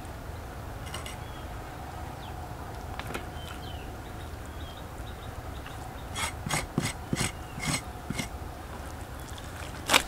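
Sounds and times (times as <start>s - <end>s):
knife scraping raw skin: 6.2s - 8.3s.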